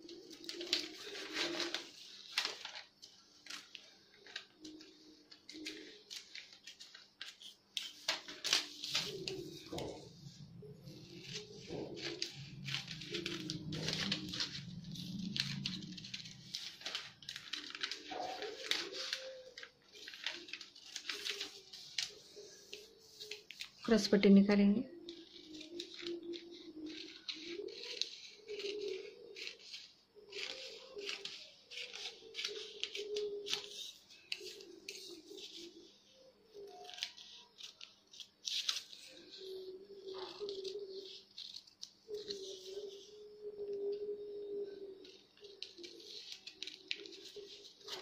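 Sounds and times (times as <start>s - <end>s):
scissors snipping paper: 0.0s - 23.9s, 25.0s - 48.0s
paper rustling: 0.0s - 24.3s, 24.9s - 48.0s.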